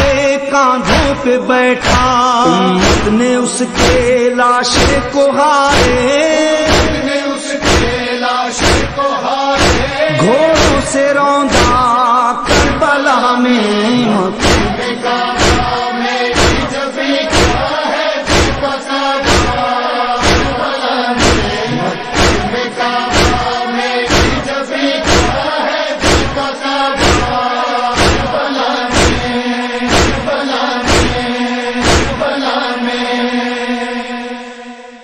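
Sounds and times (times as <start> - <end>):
rhythmic chest-beating thumps: 0.0 - 13.2, 13.9 - 34.4
male voices chanting drone: 0.0 - 35.0.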